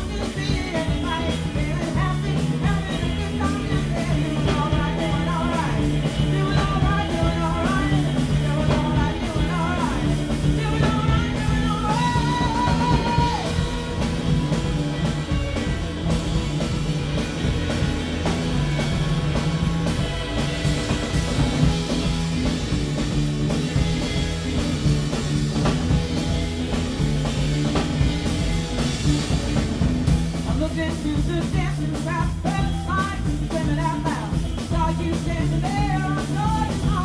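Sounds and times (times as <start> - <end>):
woman singing: 0.0 - 13.9, 30.5 - 37.0
drum beat: 0.0 - 37.0
electric bass: 0.0 - 37.0
rock and roll band playing: 0.0 - 37.0.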